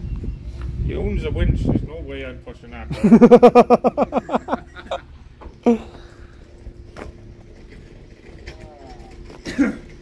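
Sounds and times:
man coughing: 9.4 - 10.0.

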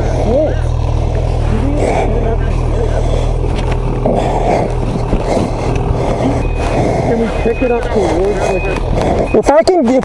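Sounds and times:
snowmobile engine idling: 0.0 - 10.0
reverse warning beeper: 6.3 - 9.8.

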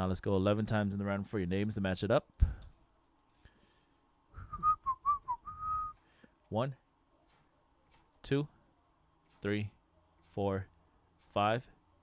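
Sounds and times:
man whistling a tune: 4.4 - 6.0.

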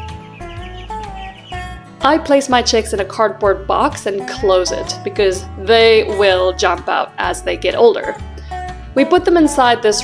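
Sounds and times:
chicks peeping: 0.0 - 1.8
background music with bass: 0.0 - 10.0.

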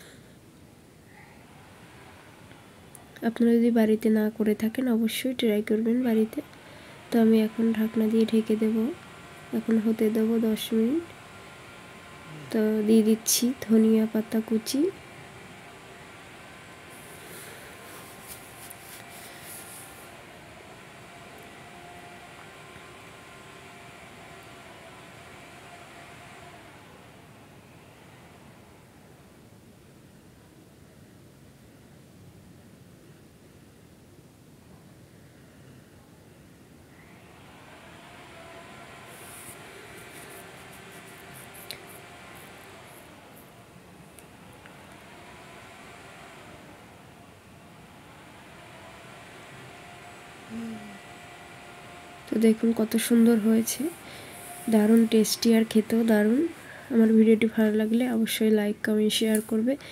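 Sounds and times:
gas stove burner hissing: 0.0 - 29.4, 37.1 - 59.9.

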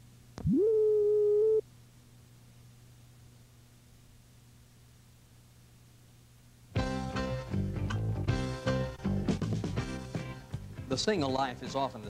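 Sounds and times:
faint low hum: 0.0 - 6.8
steady electronic tone: 0.4 - 1.6.

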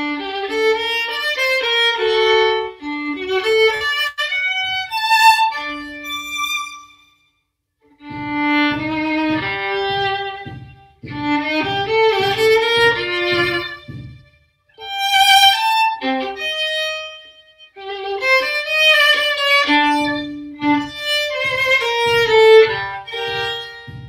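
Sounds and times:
solo violin playing: 0.0 - 7.2, 7.9 - 24.0.

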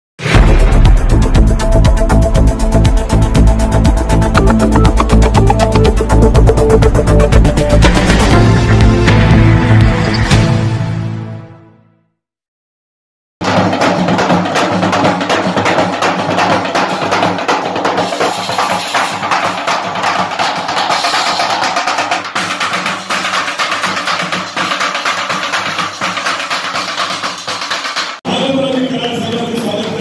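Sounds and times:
drums beaten with sticks: 0.2 - 9.0, 13.4 - 30.0.

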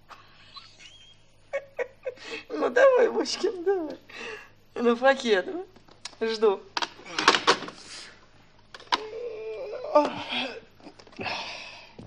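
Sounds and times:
breathy hiss: 7.7 - 8.3.

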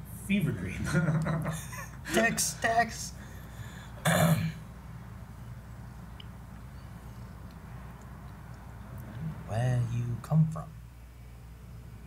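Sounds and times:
man clearing his throat: 4.0 - 4.6.

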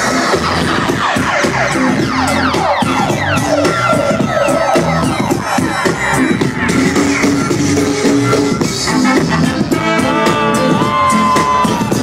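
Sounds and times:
drum beat: 0.0 - 12.0.

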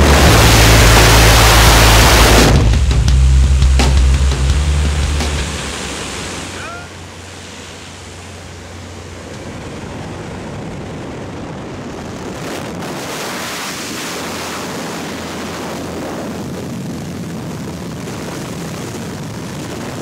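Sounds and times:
aircraft engine drone: 0.0 - 16.7
wind rushing through open door: 3.9 - 20.0.

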